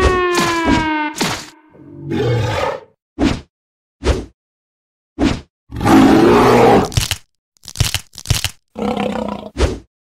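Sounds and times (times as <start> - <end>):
monster roaring: 5.7 - 6.9, 8.8 - 9.6
monster growling and crunching: 5.9 - 9.5.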